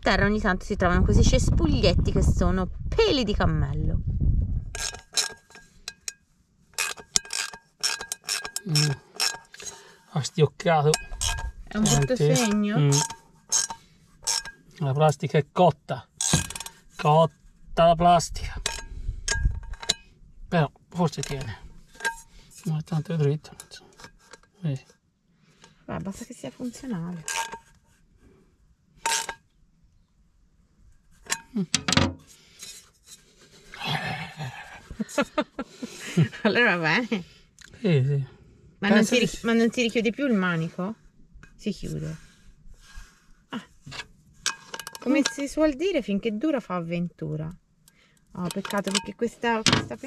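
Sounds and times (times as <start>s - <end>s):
cooking pot scrape or clink: 4.8s - 6.2s, 6.8s - 9.9s, 10.9s - 14.6s.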